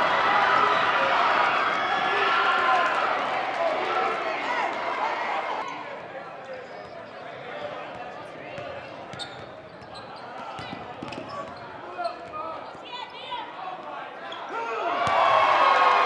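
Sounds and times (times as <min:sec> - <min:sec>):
crowd cheering and shouting: 0:00.0 - 0:06.0, 0:14.4 - 0:16.0
sneakers squeaking: 0:05.6 - 0:13.4.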